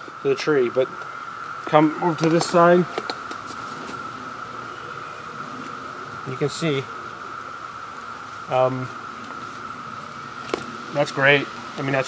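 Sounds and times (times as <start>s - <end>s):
high-pitched hum: 0.0s - 12.0s
light rustling: 1.0s - 4.2s.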